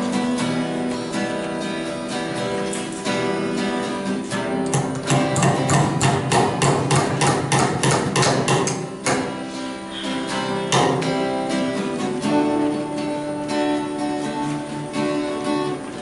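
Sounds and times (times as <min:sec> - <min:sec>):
acoustic guitar music: 0:00.0 - 0:16.0
hammer hitting nail into log: 0:04.7 - 0:09.4, 0:10.7 - 0:11.0.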